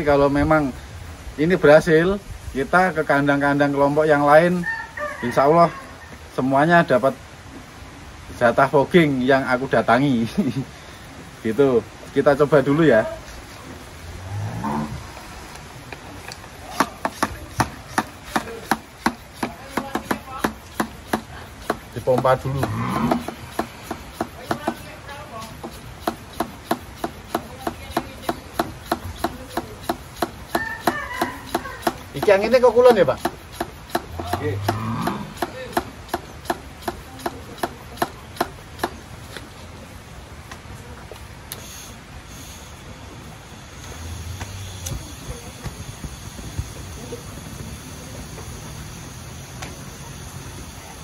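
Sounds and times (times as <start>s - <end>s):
hand pump clicking: 16.2s - 39.0s.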